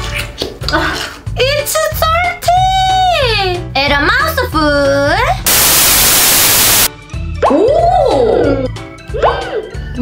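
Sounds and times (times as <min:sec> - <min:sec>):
white-noise static burst: 0:05.5 - 0:06.9.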